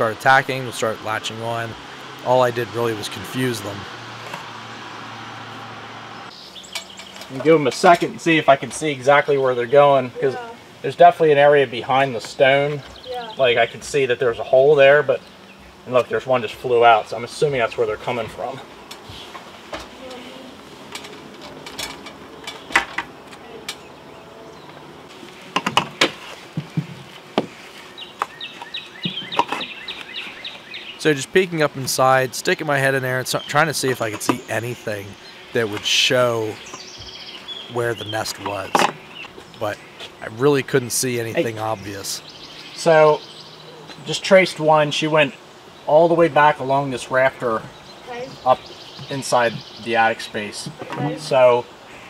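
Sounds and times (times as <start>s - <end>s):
wasps buzzing: 0.0s - 11.0s, 11.7s - 52.0s
background hiss: 0.0s - 52.0s
bird chirps: 6.1s - 7.3s, 27.9s - 31.8s, 32.6s - 40.3s, 41.2s - 44.1s
sharp knocks and rustles: 25.1s - 30.3s.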